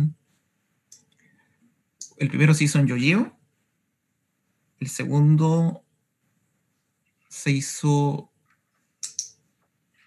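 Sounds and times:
man speaking: 2.0s - 3.4s, 4.8s - 5.8s, 7.3s - 8.3s.

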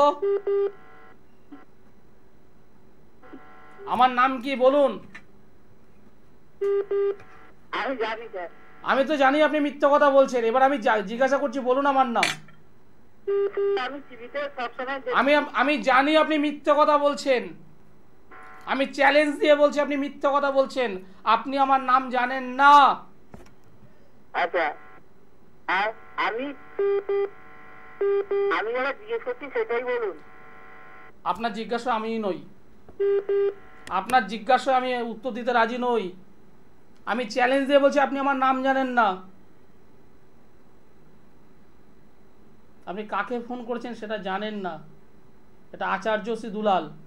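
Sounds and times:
voice on phone call: 0.0s - 0.3s, 7.7s - 12.3s, 13.4s - 17.3s, 24.3s - 25.0s, 25.7s - 27.1s, 28.2s - 30.4s
short telephone line beeps: 0.2s - 1.7s, 6.6s - 7.5s, 33.0s - 33.8s.

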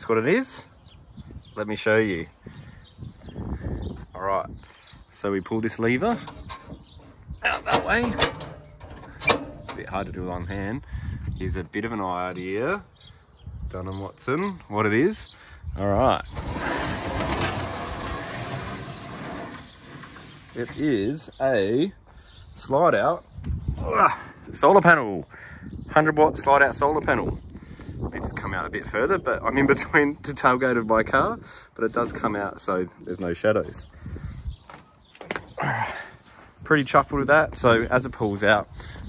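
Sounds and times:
solar panel sliding on metal runners: 5.7s - 10.4s, 16.2s - 21.3s
handling noise: 6.0s - 10.1s.

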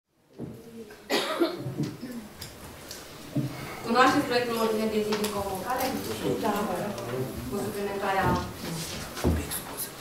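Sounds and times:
person coughing: 1.1s - 2.2s.

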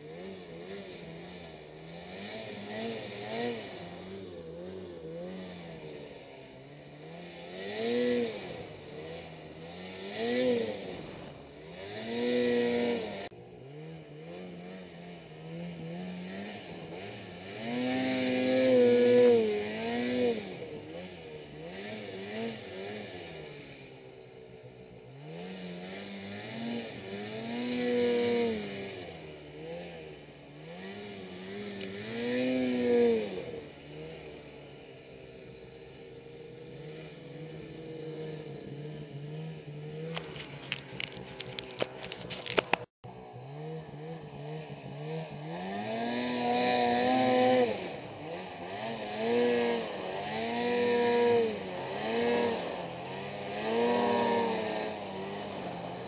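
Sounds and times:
snowmobile engine revving: 0.0s - 56.0s.

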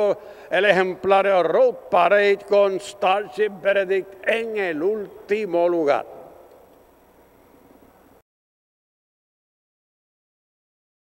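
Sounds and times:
man's voice: 0.0s - 6.1s
low ambience hiss: 0.0s - 8.2s.

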